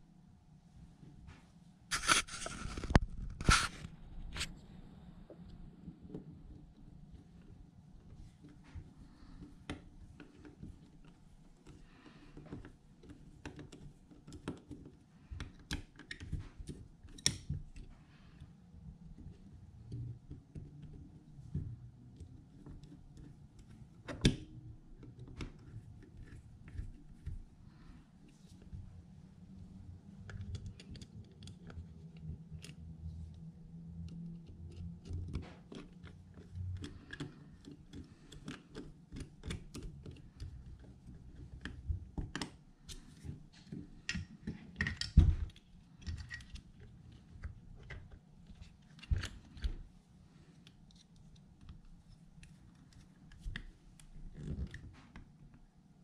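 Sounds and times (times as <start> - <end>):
metal parts clicking and tapping: 44.0 - 46.6.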